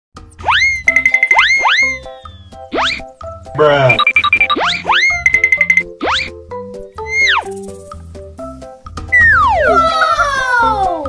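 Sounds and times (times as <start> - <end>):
playful background music: 0.2 - 11.0
cartoon boing sound effects: 4.6 - 5.3, 9.1 - 9.8.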